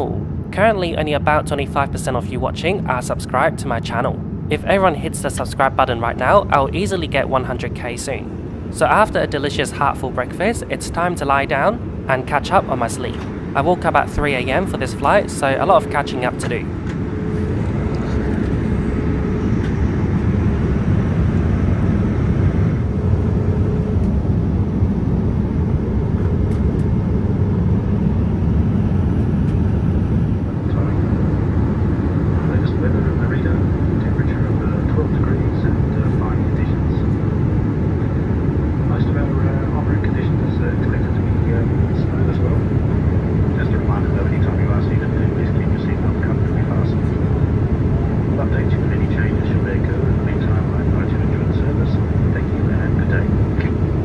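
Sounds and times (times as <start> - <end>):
airliner cabin noise: 0.0 - 54.0.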